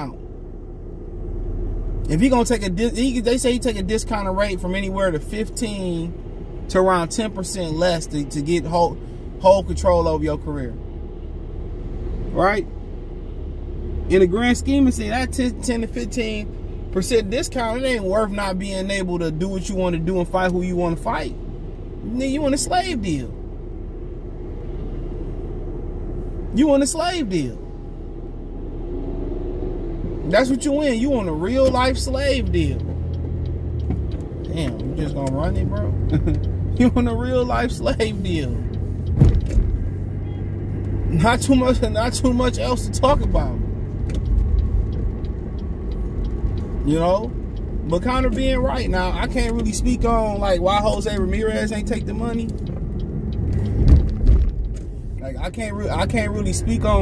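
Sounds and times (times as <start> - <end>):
vehicle rumble inside car cabin: 0.0 - 57.0.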